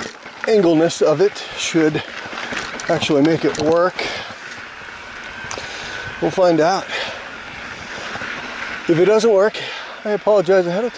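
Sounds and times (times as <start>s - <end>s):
bike rolling over dirt trail: 0.0s - 10.9s.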